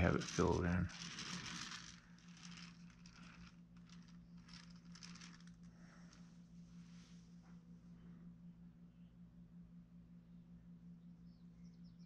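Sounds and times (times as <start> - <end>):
tool scraping modelling clay: 0.0 - 5.5
steady low hum: 0.0 - 12.0.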